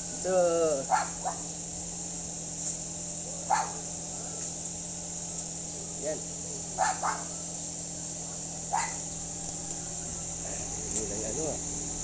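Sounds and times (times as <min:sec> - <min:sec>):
high insect buzz: 0:00.0 - 0:12.0
steady low hum: 0:00.0 - 0:12.0
dog barking: 0:00.9 - 0:01.5, 0:03.3 - 0:04.4, 0:06.8 - 0:07.5, 0:08.2 - 0:09.0.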